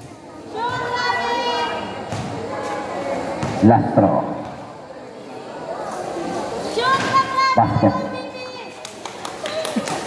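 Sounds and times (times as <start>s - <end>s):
basketball bouncing on concrete: 2.1s - 2.4s.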